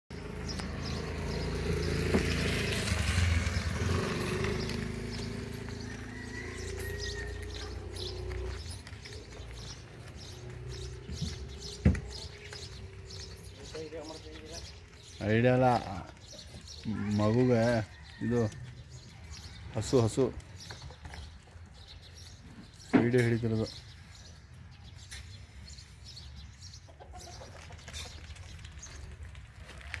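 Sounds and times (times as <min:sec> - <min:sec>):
vehicle engine running: 0:00.1 - 0:15.0
birds chirping: 0:00.1 - 0:30.0
chickens clucking: 0:26.8 - 0:28.5.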